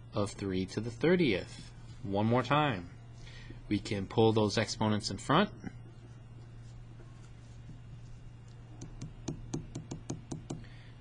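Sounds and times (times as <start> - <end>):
steady low hum: 0.0 - 11.0
marker tapping on paper: 8.8 - 10.7.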